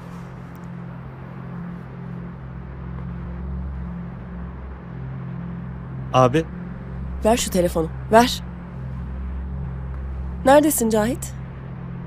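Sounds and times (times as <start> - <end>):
low dramatic score drone: 0.0 - 12.0.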